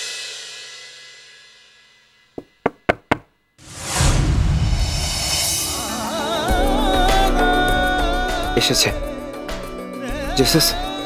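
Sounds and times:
knocks on a door: 2.4s - 3.3s
background music: 5.4s - 11.0s.

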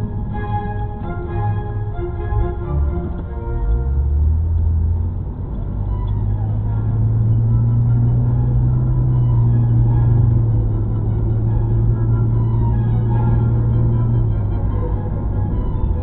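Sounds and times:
background music: 0.0s - 16.0s
car engine and road rumble: 0.0s - 16.0s.

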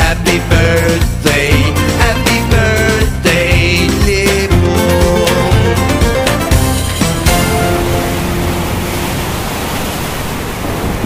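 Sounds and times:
outro music held notes: 0.6s - 9.5s
steady rushing noise effect: 7.4s - 11.0s.

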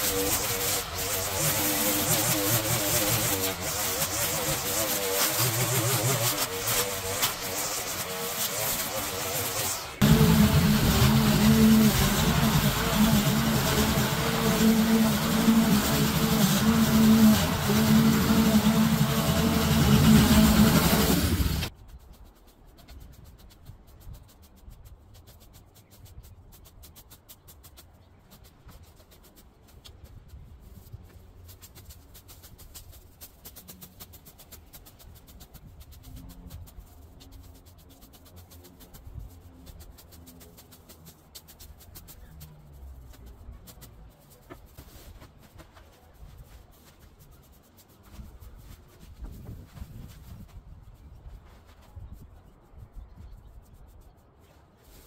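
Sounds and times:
lawn mower cutting grass: 0.0s - 21.7s.

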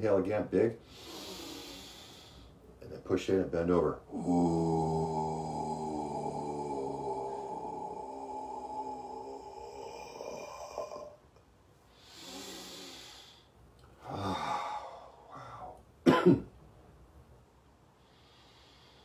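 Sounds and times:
breathy inhale: 0.8s - 2.6s, 11.9s - 15.8s, 18.0s - 19.0s
sighing exhale: 0.9s - 2.6s
sharp cough: 16.0s - 16.5s.

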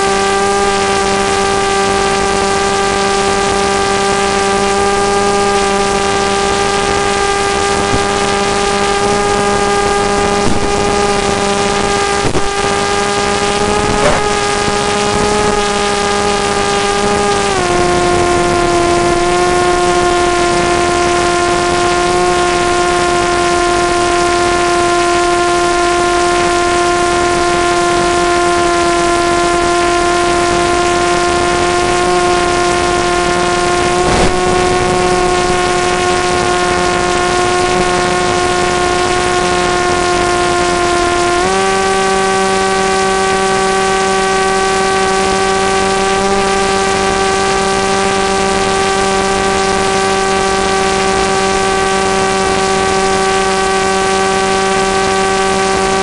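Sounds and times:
model aircraft motor whine: 0.0s - 56.0s.

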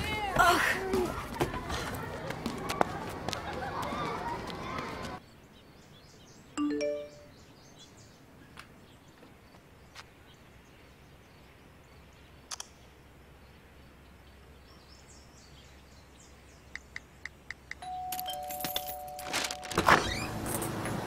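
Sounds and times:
two-note doorbell chime: 6.6s - 7.3s, 17.8s - 19.8s.

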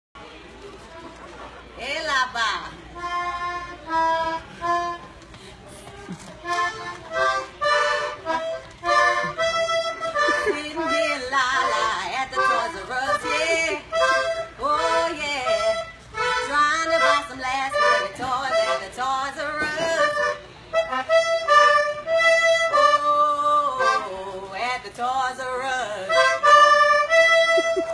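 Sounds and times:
toy accordion chords: 3.0s - 5.1s, 6.4s - 24.5s, 25.6s - 27.9s.

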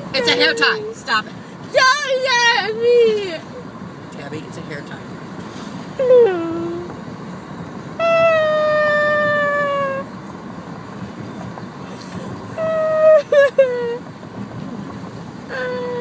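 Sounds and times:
young woman wailing and sobbing: 6.0s - 6.8s, 8.0s - 10.0s, 12.6s - 14.0s.

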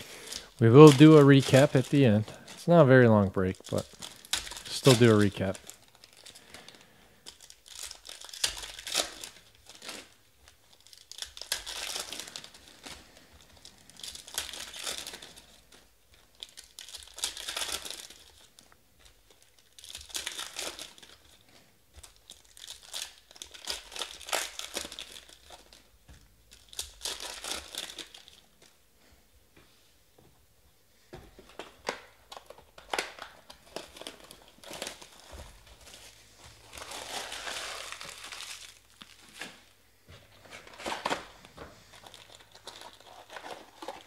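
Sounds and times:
foil packs torn and crinkled: 0.0s - 2.8s, 3.4s - 28.7s, 31.5s - 39.8s, 40.5s - 44.0s.

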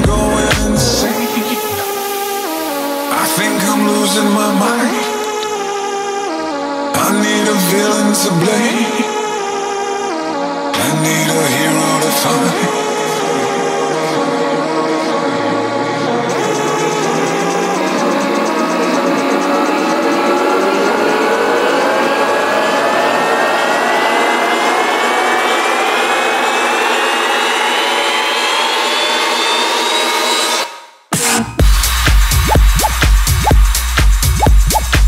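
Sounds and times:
synth riser climbing in pitch: 12.6s - 30.7s.

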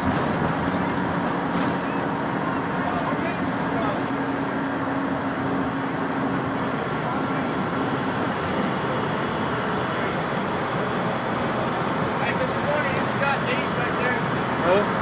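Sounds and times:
bus diesel engine and road drone: 0.0s - 15.0s.

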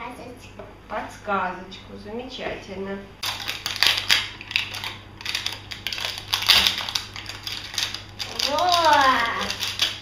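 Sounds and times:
plastic wrapper crinkling and tearing: 3.2s - 10.0s.

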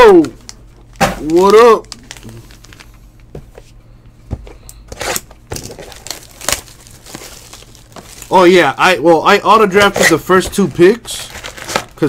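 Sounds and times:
plastic shrink wrap crinkling: 0.1s - 3.3s, 4.9s - 8.7s, 9.4s - 12.0s.

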